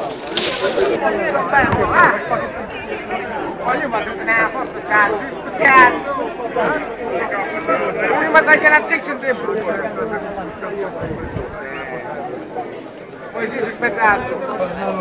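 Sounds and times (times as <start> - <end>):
men chatting: 0.0 - 15.0.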